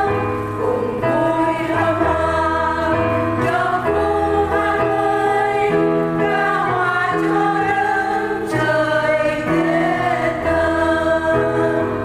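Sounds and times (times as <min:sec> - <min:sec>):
choir singing a hymn: 0:00.0 - 0:12.0
instrumental accompaniment: 0:00.0 - 0:12.0.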